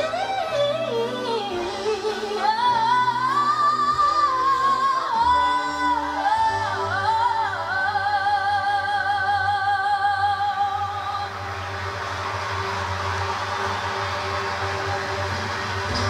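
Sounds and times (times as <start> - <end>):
string orchestra chords: 0.0 - 16.0.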